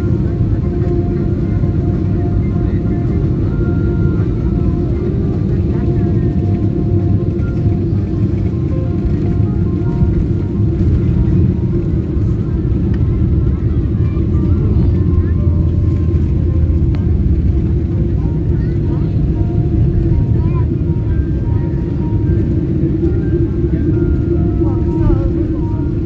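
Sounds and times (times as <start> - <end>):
faint music: 0.0 - 26.0
faint voices: 0.0 - 26.0
jet airliner cabin rumble: 0.0 - 26.0.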